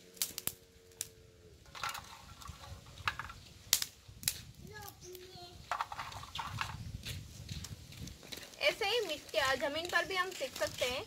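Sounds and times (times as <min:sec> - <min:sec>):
dry twigs snapping: 0:00.0 - 0:01.1, 0:01.7 - 0:05.2, 0:07.6 - 0:11.0
wood clattering in basket: 0:01.7 - 0:03.4, 0:05.6 - 0:06.8.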